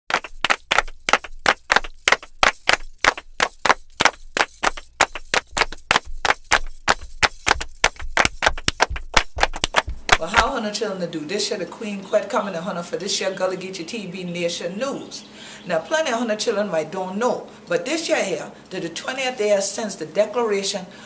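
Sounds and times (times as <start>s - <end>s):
fast percussion music: 0.1s - 10.5s.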